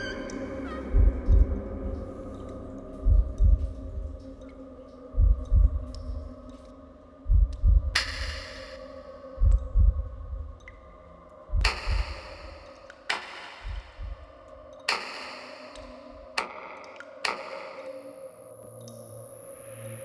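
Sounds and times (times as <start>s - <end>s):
sustained drone: 0.0s - 12.8s
heartbeat-like double thuds: 0.8s - 2.0s, 3.0s - 4.2s, 5.2s - 6.2s, 7.3s - 8.4s, 9.4s - 10.5s, 11.5s - 12.6s, 13.5s - 14.3s.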